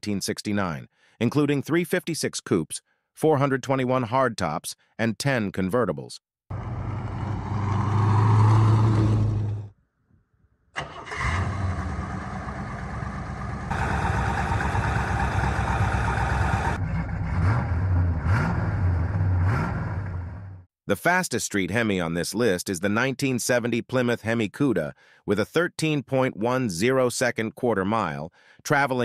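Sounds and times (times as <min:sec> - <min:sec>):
car engine running: 0:06.5 - 0:09.7, 0:11.2 - 0:20.5
engine throttle blips: 0:06.5 - 0:09.7, 0:10.8 - 0:20.6.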